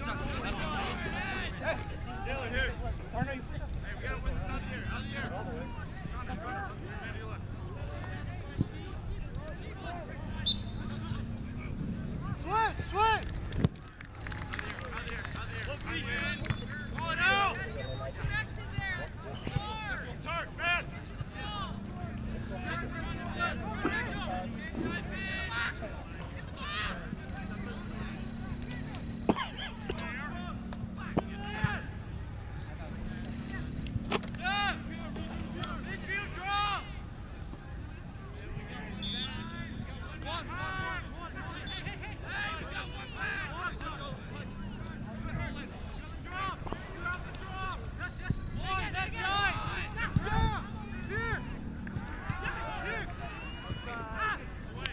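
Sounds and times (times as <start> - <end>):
people shouting and calling: 0.0 - 13.4, 14.9 - 54.9.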